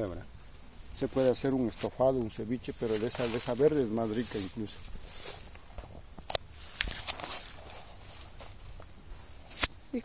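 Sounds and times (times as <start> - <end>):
plants brushing past: 1.0 - 9.7
twigs crackling underfoot: 1.0 - 9.7
footsteps through dry leaves: 2.6 - 5.6.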